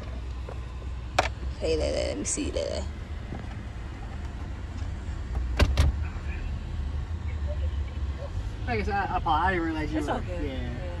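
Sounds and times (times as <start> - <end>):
car engine low rumble: 0.0 - 11.0.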